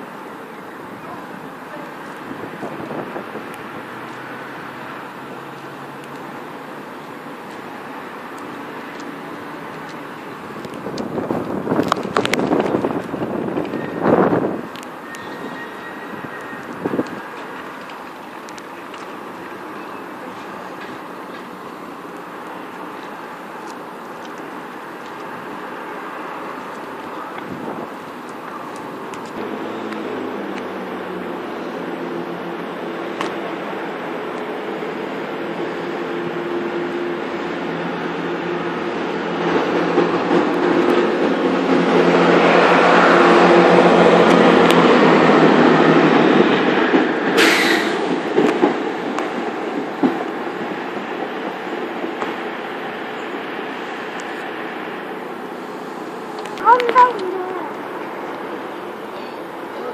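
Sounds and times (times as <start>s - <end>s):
diesel train engine drone: 0.0s - 59.9s
train wheels running: 1.2s - 59.9s
brief high hiss: 47.4s - 48.1s.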